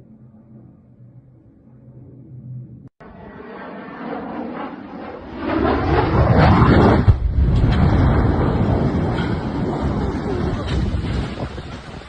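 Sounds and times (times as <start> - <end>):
jet engine roaring: 0.0 - 12.0
aircraft crash noise: 0.3 - 12.0.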